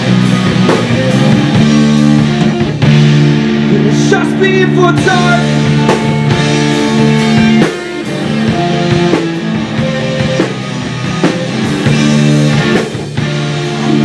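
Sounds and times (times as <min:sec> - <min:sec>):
bass guitar: 0:00.0 - 0:14.0
drum kit: 0:00.0 - 0:14.0
electric guitar: 0:00.0 - 0:14.0.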